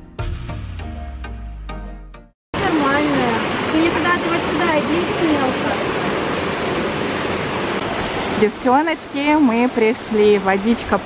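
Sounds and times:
waterfall pouring into pool: 2.6s - 8.4s.

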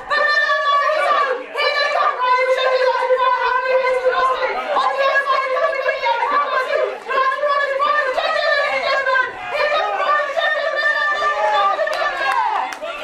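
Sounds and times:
high-pitched shouting voices: 0.0s - 13.0s.

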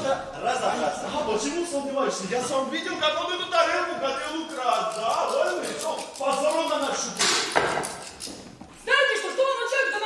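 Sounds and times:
actors speaking: 0.0s - 10.0s.

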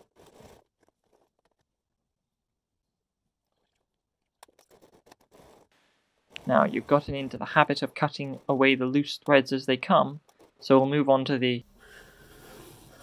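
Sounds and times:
cloth rustling and scratching: 0.0s - 1.9s, 4.5s - 8.8s, 10.2s - 10.8s.

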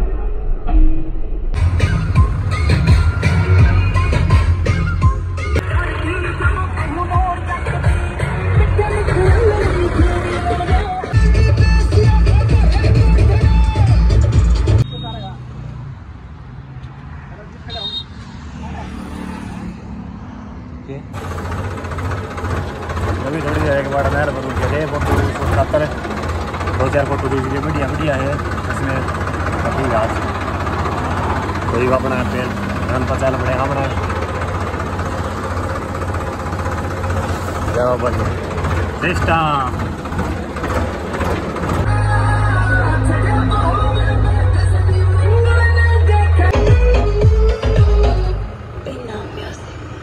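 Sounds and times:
background music: 1.6s - 14.8s, 41.8s - 48.6s
tractor diesel engine idling: 1.6s - 14.8s, 21.2s - 48.8s
wind and road noise: 14.8s - 22.6s, 48.4s - 50.0s
motorbike passing: 14.9s - 44.9s.

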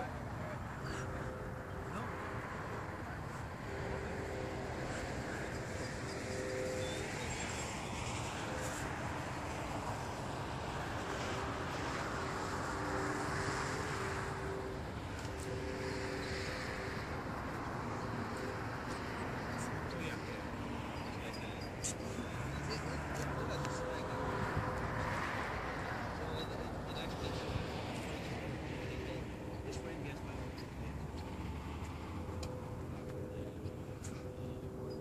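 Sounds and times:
model airplane engine drone: 0.0s - 35.0s.

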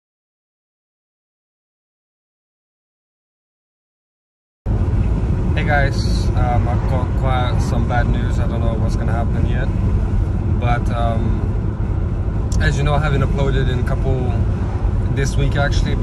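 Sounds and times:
car interior rumble: 4.7s - 16.0s
man talking: 5.6s - 9.7s, 10.6s - 11.5s, 12.5s - 16.0s.

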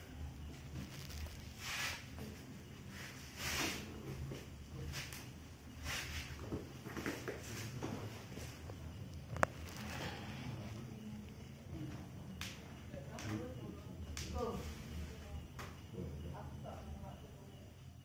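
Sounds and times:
faint indistinct voices: 7.2s - 18.0s.

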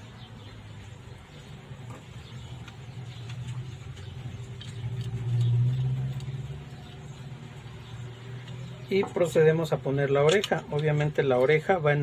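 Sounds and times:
low engine hum: 0.0s - 9.2s
metal lock parts clicking: 10.2s - 11.0s.

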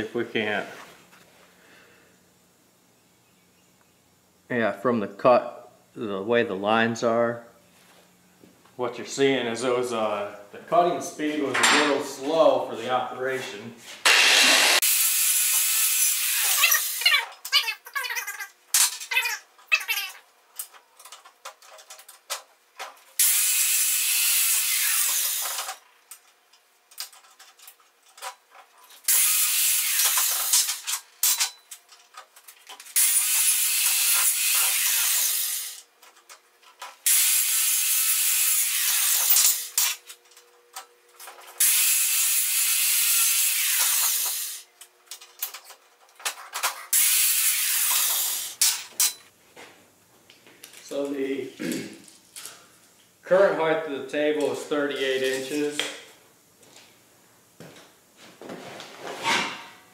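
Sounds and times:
arc welding noise: 8.4s - 49.3s, 50.0s - 56.3s.

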